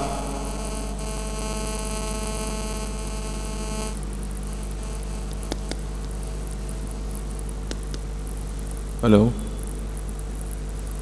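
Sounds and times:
electrical mains hum: 0.0 - 11.0
high-pitched electrical buzz: 0.0 - 11.0.

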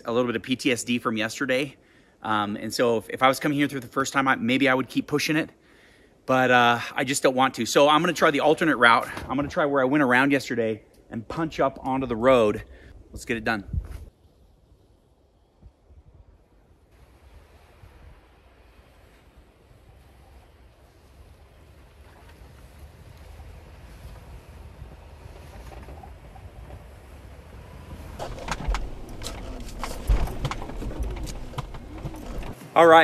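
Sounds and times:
car engine driving through snow: 22.6 - 32.6
thumps and crunches: 28.2 - 32.6.

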